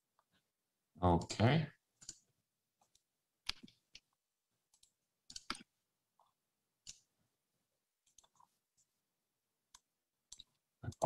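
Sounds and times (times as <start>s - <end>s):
computer mouse clicks: 2.0s - 7.1s, 8.0s - 8.9s, 9.7s - 11.0s.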